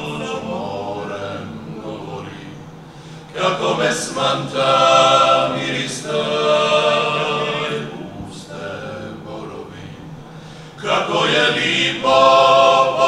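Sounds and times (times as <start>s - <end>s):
male vocal group singing in harmony: 0.0s - 13.0s.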